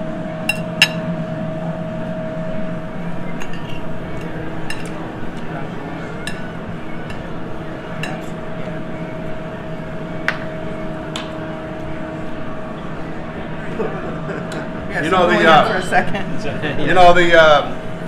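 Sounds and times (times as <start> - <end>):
steady background hum: 0.0 - 18.0.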